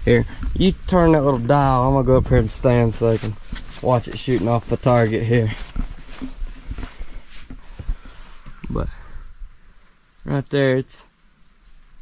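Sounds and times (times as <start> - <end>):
insects chirring: 0.0 - 12.0
footsteps on sawdust: 0.2 - 8.8.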